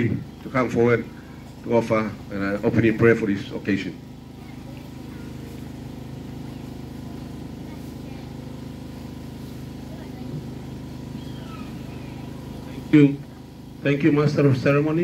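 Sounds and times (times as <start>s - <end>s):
low mechanical hum: 0.0s - 15.0s
faint voices: 4.1s - 14.0s.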